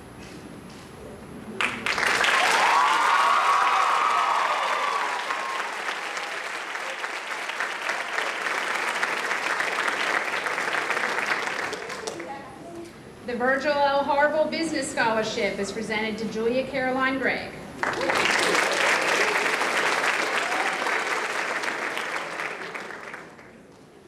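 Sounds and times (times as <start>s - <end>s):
audience applauding: 1.6s - 12.4s, 17.8s - 24.0s
person cheering: 2.4s - 6.4s, 20.2s - 21.1s.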